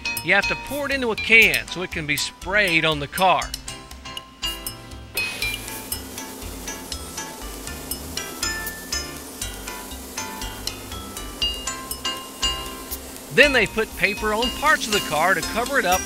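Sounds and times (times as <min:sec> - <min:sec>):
chiming bell-like music with bass: 0:03.6 - 0:05.1
steady hiss: 0:04.5 - 0:16.0.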